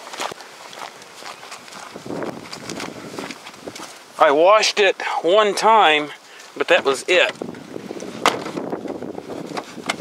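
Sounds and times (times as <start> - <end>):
scuffing rustle: 0.0 - 10.0.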